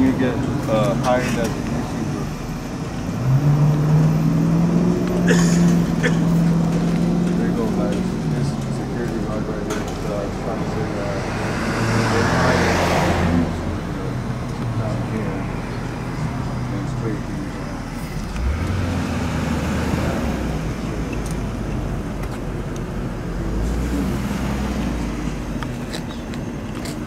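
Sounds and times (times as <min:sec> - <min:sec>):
passing road noise: 0:00.0 - 0:27.0
truck engine rumble: 0:00.0 - 0:27.0.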